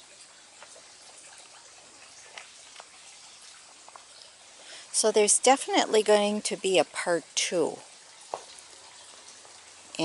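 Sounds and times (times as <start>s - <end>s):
faint outdoor hiss: 0.0s - 10.0s.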